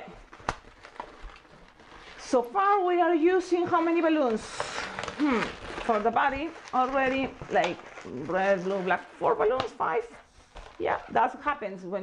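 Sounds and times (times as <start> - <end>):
latex balloons being handled: 0.0 - 12.0.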